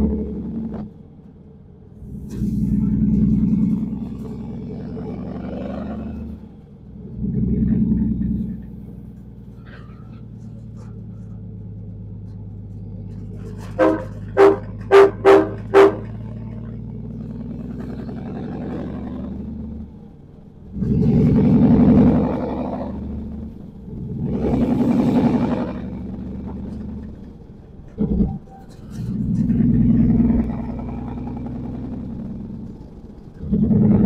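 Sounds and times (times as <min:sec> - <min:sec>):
diesel truck engine droning: 0:00.0 - 0:34.0
truck horn toots: 0:13.4 - 0:16.6.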